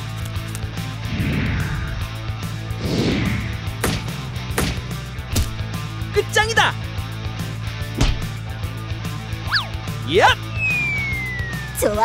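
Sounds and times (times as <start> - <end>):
background music: 0.0 - 12.0
cartoon whooshes: 1.1 - 3.7.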